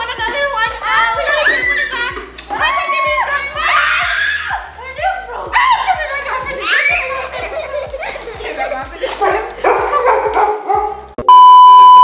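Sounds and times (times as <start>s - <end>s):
lively voices: 0.0s - 11.2s
background music with steady beat: 0.0s - 11.3s
loud steady test-tone beep: 11.3s - 12.0s.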